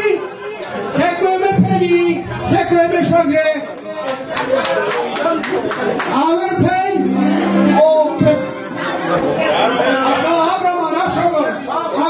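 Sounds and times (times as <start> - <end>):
man speaking into a microphone: 0.0 - 4.2, 6.1 - 8.6, 9.3 - 12.0
people chattering: 0.0 - 12.0
music: 6.5 - 10.7.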